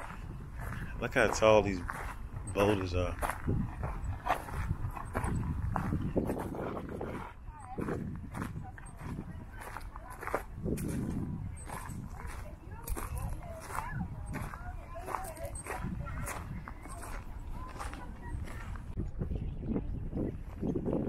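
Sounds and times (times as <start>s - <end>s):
people talking: 0.0s - 3.3s, 5.1s - 21.0s
footsteps on gravel: 0.0s - 19.0s
wind rumbling on microphone: 0.0s - 21.0s.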